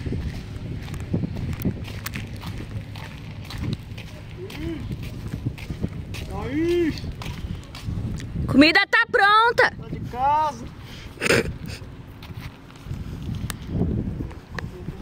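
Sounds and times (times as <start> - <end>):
footsteps on gravel: 0.0 - 8.5, 11.5 - 14.8.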